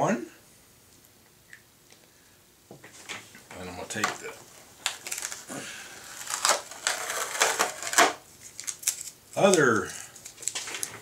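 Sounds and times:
masking tape crackling: 3.4s - 11.0s.

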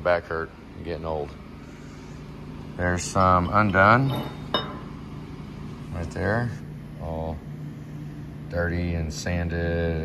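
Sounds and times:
steady low hum: 0.0s - 10.0s
metal rods clinking together: 3.4s - 4.9s.

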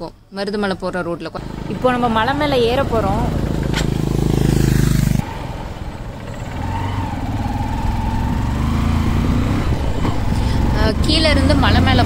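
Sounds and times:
motorcycle engine running: 1.4s - 12.0s.

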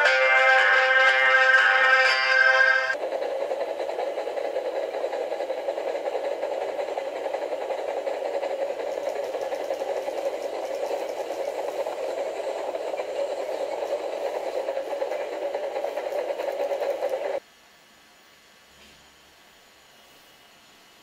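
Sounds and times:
model train whirring rattle: 0.0s - 17.4s.

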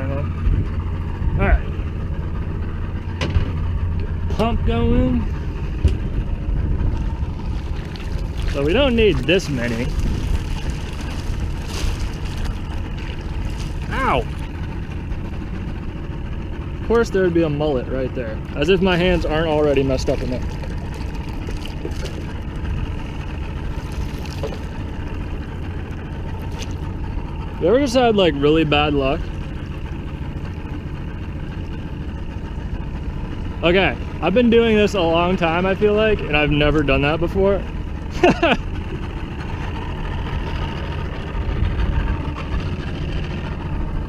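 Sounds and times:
boat engine idling: 0.0s - 44.0s
water splashing and dripping: 7.3s - 14.6s, 19.0s - 25.2s, 25.8s - 26.9s.

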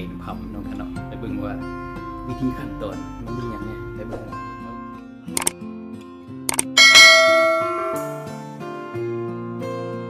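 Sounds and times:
background music: 0.0s - 10.0s
notification bell chime: 6.8s - 8.4s.

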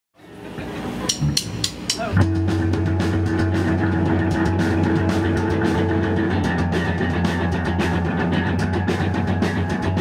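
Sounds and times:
rock band sustaining low notes: 0.2s - 10.0s
drumstick count-in clicks: 1.1s - 2.2s.

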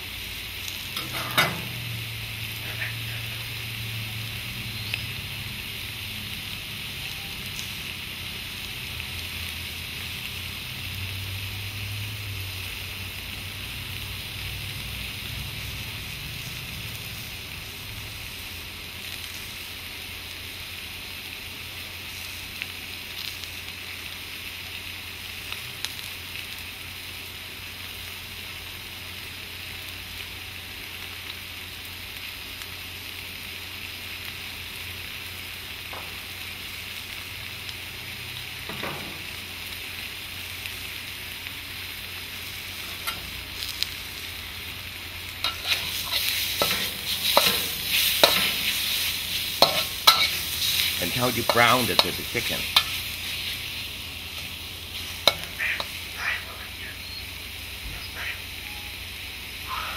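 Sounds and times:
food sizzling in a wok: 0.0s - 59.9s
spatula scraping a wok: 1.0s - 1.9s, 2.6s - 3.6s, 42.6s - 43.9s, 45.3s - 56.2s.

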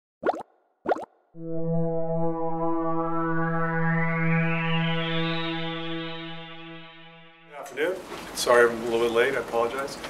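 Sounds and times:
sustained synthesizer chord: 1.4s - 7.6s.

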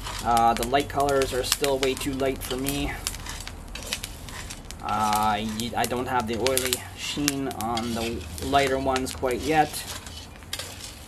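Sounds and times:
coffee beans rattling in skillet: 0.0s - 11.0s
propane burner hum: 0.0s - 11.0s.

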